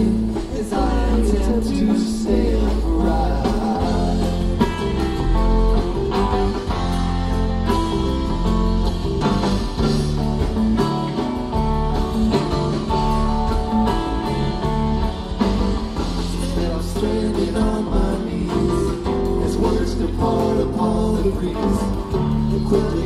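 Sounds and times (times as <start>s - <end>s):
bass guitar: 0.0s - 23.0s
drums: 0.0s - 23.0s
electric guitar: 0.0s - 23.0s.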